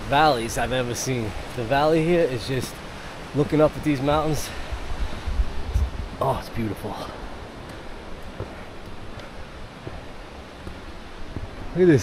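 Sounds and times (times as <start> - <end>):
faint footsteps on stone steps: 0.0 - 12.0.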